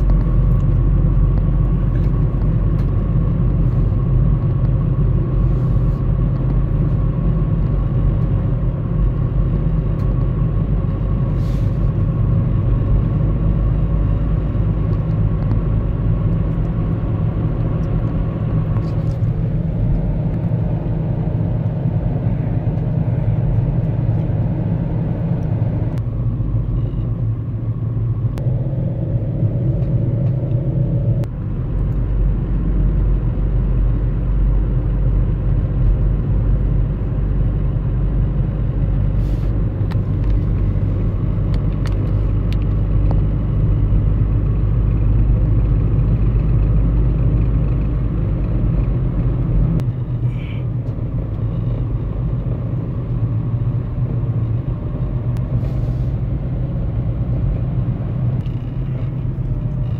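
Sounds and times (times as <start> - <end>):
car engine and tyre rumble: 0.0 - 59.9
faint whine: 18.6 - 31.3.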